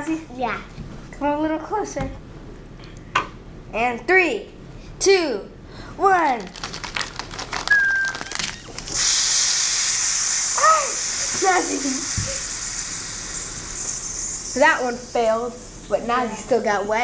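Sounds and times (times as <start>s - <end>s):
high fizzing hiss: 8.9s - 17.0s.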